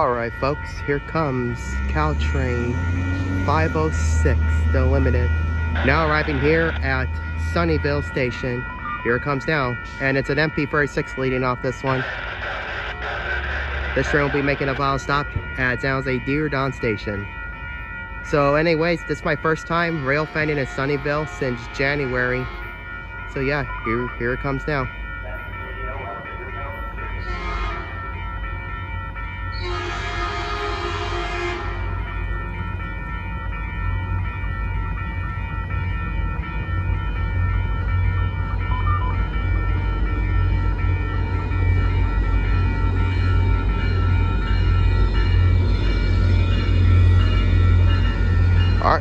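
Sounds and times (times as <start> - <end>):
locomotive rumble: 0.0 - 49.0
train horn blasts: 27.2 - 28.0, 29.6 - 32.0.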